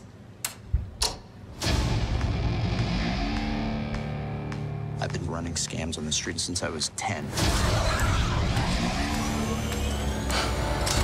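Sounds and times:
low rumble: 1.5 - 5.1
sharp hit: 1.6 - 4.4, 7.3 - 11.0.

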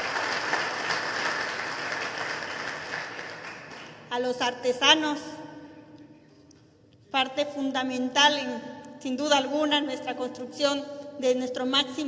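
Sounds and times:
audience applauding: 0.0 - 4.1.

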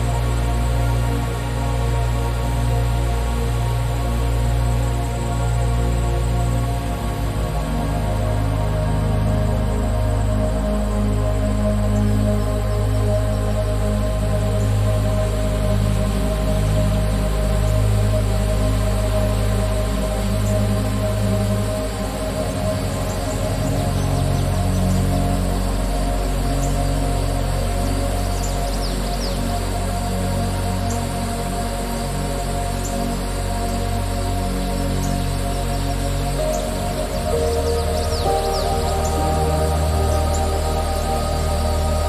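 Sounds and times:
slow ambient music: 0.0 - 42.0
steady low drone: 0.0 - 42.0.

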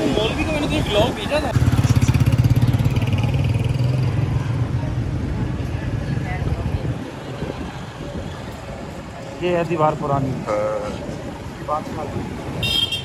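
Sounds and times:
motorcycle engine running: 1.5 - 4.3.

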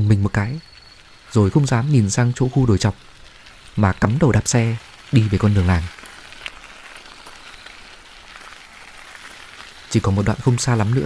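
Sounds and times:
faint steady background hiss: 0.0 - 11.0.

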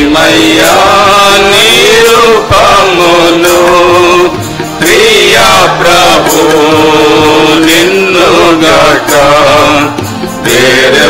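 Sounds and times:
men singing worship song: 0.0 - 11.0.

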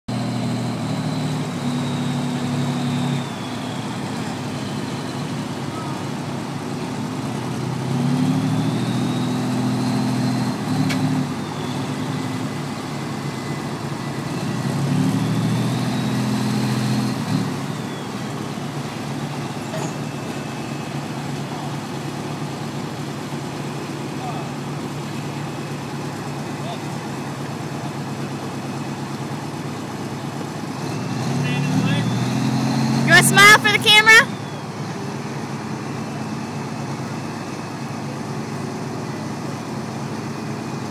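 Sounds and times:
tractor engine idling and revving: 0.1 - 40.9.

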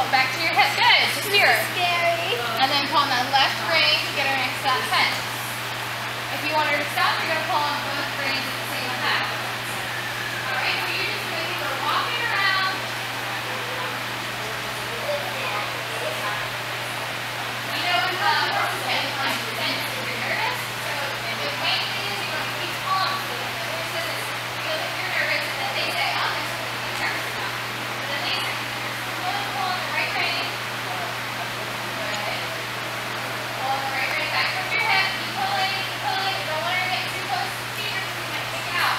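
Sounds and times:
distant indistinct voices: 0.0 - 38.9
steady low hum: 0.0 - 38.9.

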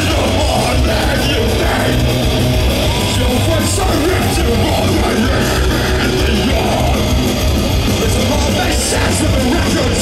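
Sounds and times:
bass guitar: 0.0 - 10.0
drums: 0.0 - 10.0
electric guitars: 0.0 - 10.0.

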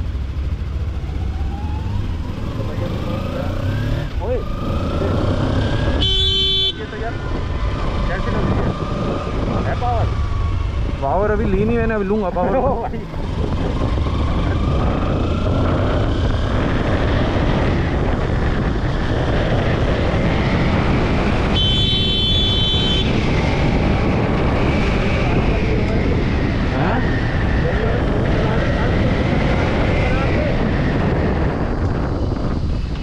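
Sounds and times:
motorcycle engine accelerating: 0.0 - 33.0
wind rushing over microphone: 0.0 - 33.0.

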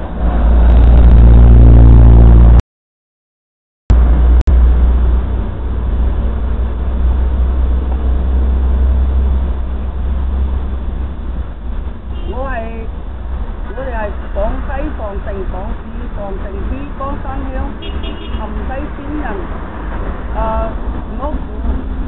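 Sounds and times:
street noise rumble: 0.0 - 2.6, 3.9 - 22.0
woman's voice: 12.3 - 12.9, 13.7 - 17.8, 18.4 - 19.6, 20.4 - 21.8.

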